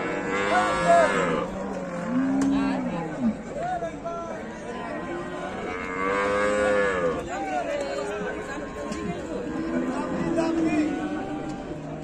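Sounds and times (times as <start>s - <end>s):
cattle mooing: 0.0s - 3.4s, 5.5s - 7.2s.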